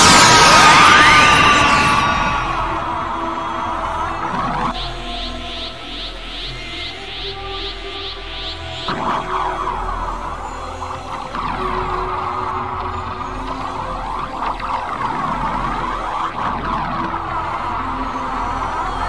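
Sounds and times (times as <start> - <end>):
low drone: 0.0 - 19.0.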